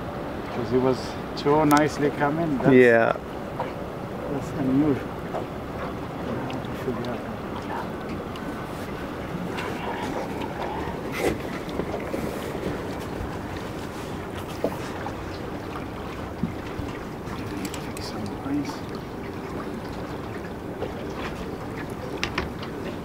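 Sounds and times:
water moving around boat: 0.0 - 23.0
light knocks: 22.1 - 22.9.

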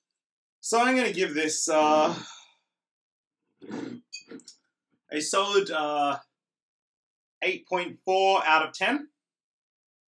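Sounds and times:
short sigh: 2.0 - 2.6.

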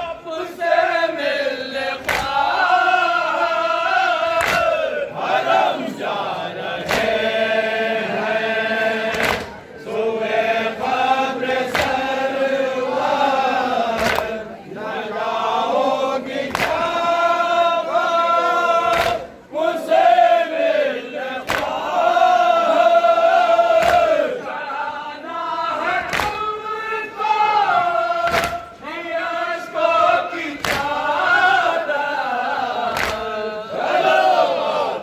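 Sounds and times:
men chanting together: 0.0 - 35.0.

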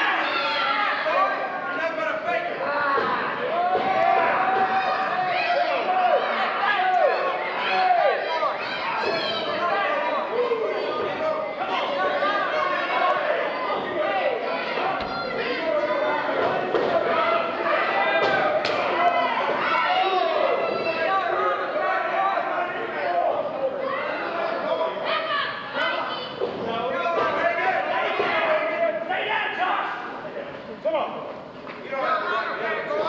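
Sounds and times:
people shouting and talking: 0.0 - 33.0.

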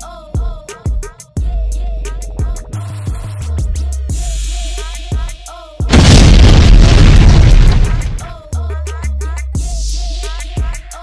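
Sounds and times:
explosion boom with deep rumble: 5.9 - 8.4.

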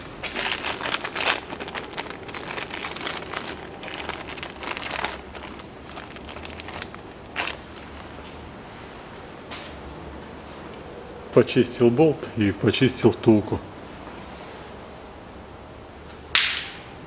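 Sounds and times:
plastic bag crinkling: 0.0 - 8.2.

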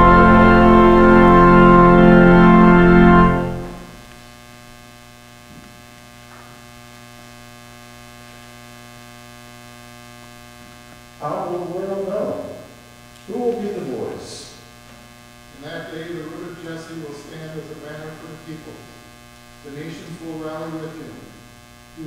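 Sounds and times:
electrical mains hum: 0.0 - 22.0.

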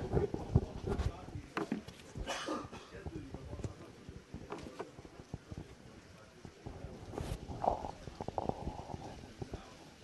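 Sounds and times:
light rain: 0.0 - 10.0.

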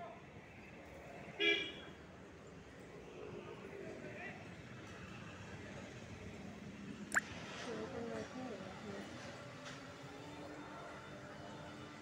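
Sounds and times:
faint street traffic: 0.0 - 12.0.

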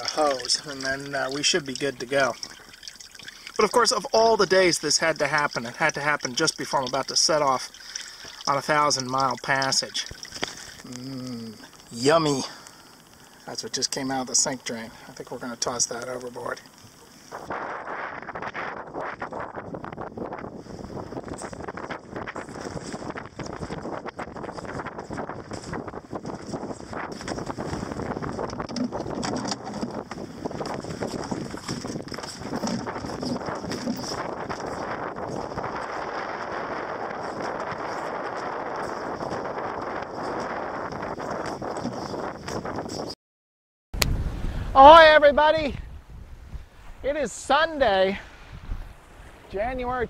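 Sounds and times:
water rushing along hull: 0.0 - 42.6, 46.6 - 50.0
wind buffeting microphone: 16.9 - 43.2, 44.0 - 50.0.

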